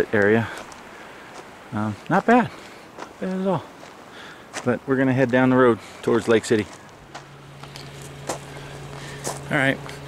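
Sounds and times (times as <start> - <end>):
background hiss: 0.0 - 10.0
vehicle engine humming: 0.0 - 10.0.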